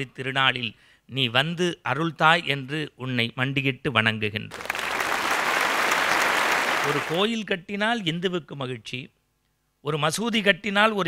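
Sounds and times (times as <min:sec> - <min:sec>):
audience applauding: 0:04.5 - 0:07.2
person speaking: 0:06.8 - 0:07.5.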